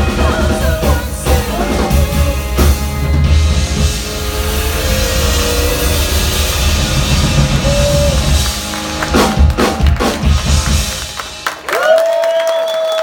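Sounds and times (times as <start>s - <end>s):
loud drum and cymbal hits: 0.0s - 11.5s
live rock band playing: 0.0s - 12.0s.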